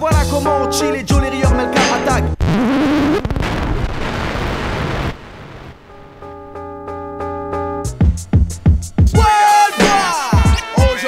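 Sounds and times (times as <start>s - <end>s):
hiss-like noise in rap mix: 9.1s - 11.0s.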